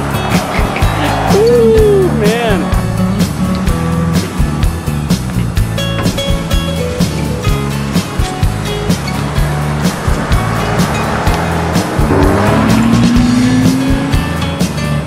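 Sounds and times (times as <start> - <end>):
song with steady beat: 7.6 - 14.9
motorcycle accelerating past: 9.4 - 14.6.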